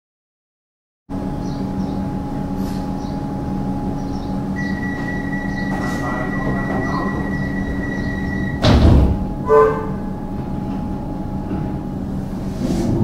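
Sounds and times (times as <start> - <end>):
train equipment hum: 1.1 - 13.0
high-pitched tone: 4.5 - 8.8.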